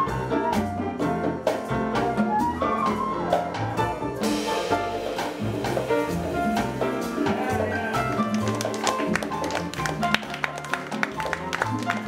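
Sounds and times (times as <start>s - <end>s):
drum taps and cymbal strikes: 0.0s - 11.8s
piano: 0.0s - 12.0s
upright bass notes: 0.0s - 12.0s.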